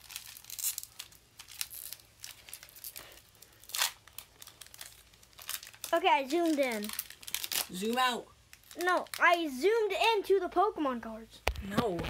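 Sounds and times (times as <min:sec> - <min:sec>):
foil wrapper crinkling and tearing: 0:00.0 - 0:09.5.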